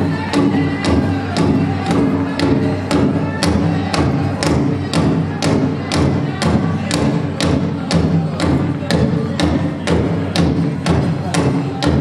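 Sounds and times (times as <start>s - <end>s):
group singing: 0.0s - 12.0s
large drum struck in unison: 0.0s - 12.0s.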